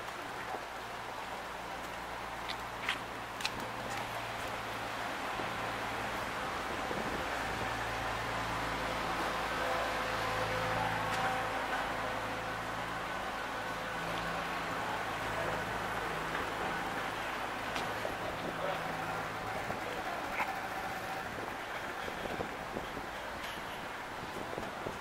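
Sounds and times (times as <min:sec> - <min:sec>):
street traffic: 0:00.0 - 0:25.0.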